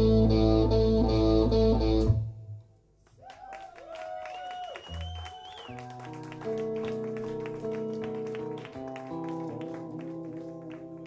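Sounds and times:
live rock band music: 6.0s - 11.0s.

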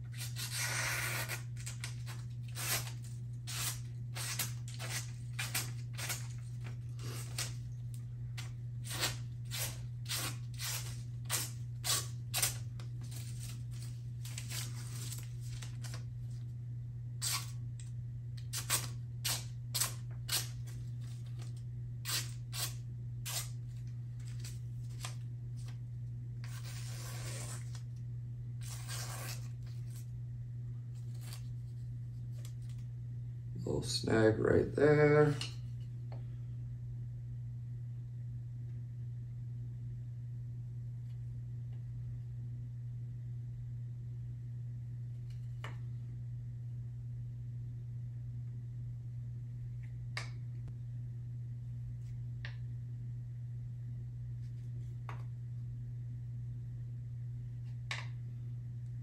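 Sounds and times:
steady low hum: 0.0s - 59.0s
knife slicing through paper: 0.1s - 7.6s, 8.8s - 16.0s, 26.4s - 27.8s, 28.6s - 30.0s.

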